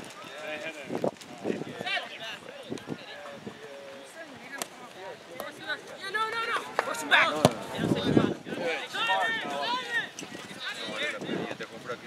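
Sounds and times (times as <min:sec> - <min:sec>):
people shouting: 0:06.0 - 0:10.1
ball being kicked: 0:06.8 - 0:07.8.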